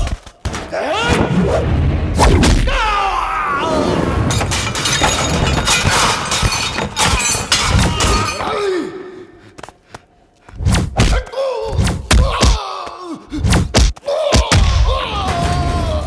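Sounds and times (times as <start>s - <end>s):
objects crashing and breaking: 3.8s - 8.6s
punch and kick impacts: 10.6s - 12.6s, 13.4s - 15.5s.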